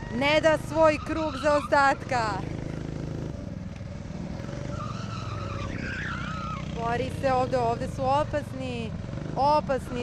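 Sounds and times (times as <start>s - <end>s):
tyres squealing: 0.0s - 2.3s, 4.6s - 6.8s
go-kart engine running: 0.0s - 10.0s.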